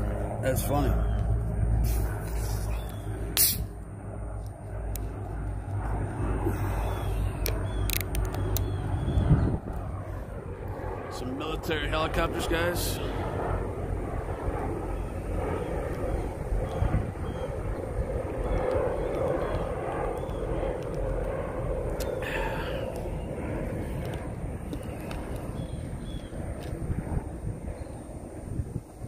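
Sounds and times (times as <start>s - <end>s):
helicopter engine drone: 0.0s - 29.0s.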